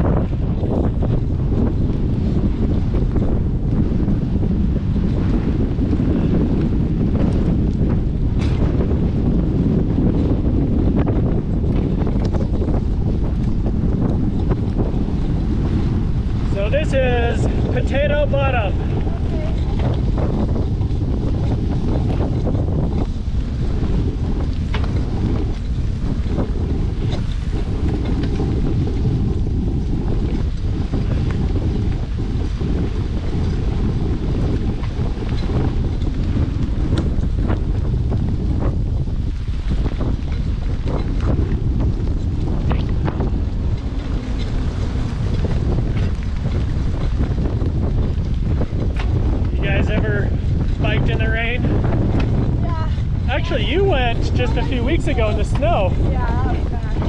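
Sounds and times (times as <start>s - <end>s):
bike rattling: 0.0s - 57.0s
wind rumble on microphone: 0.0s - 57.0s.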